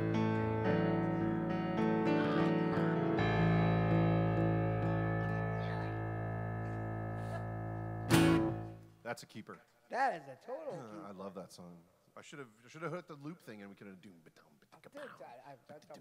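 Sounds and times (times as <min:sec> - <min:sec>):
keyboard and guitar chords ringing: 0:00.0 - 0:08.9.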